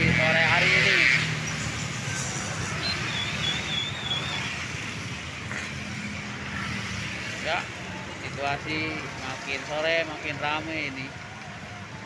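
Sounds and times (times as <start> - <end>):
car engines: 0.0 - 12.0
motorcycle engines: 0.0 - 12.0
tyres on wet road: 0.0 - 12.0
wavering high whistle: 2.8 - 4.6.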